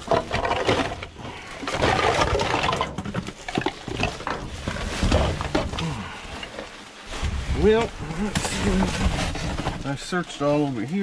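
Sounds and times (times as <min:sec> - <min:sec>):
small knocks of shifted items: 0:00.0 - 0:11.0.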